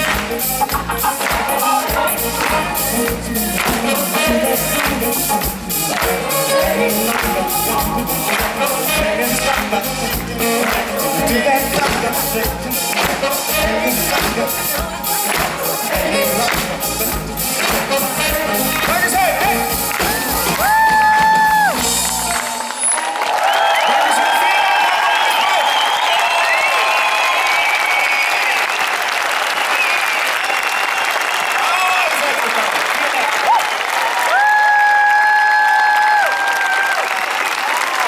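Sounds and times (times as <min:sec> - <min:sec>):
live pop band playing: 0:00.0 - 0:23.2
crowd clapping and cheering: 0:00.0 - 0:38.0.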